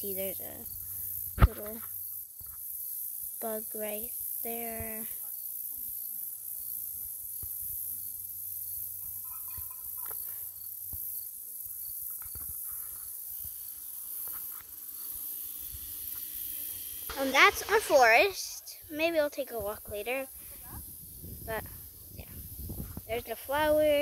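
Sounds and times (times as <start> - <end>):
insects chorus: 0.0 - 24.0.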